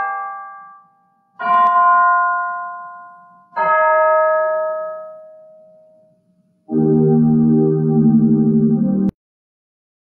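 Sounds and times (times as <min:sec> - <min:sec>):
piano chords ringing: 0:01.4 - 0:09.2.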